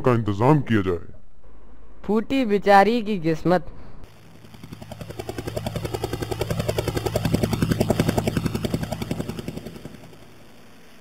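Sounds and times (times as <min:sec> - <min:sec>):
helicopter rotor chop: 0:04.1 - 0:11.0.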